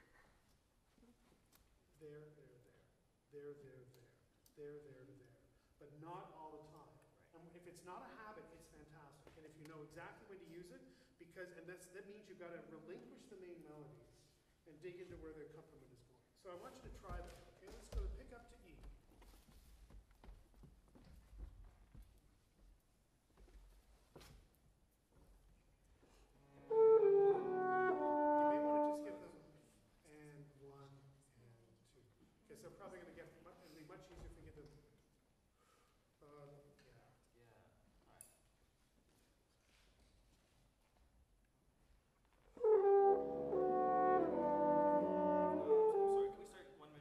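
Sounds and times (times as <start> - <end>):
wind ensemble playing chords: 26.6 - 29.2, 42.6 - 46.5.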